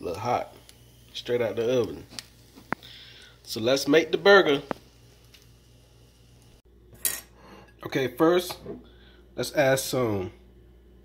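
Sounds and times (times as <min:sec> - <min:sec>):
tableware clink: 0:07.0 - 0:07.8.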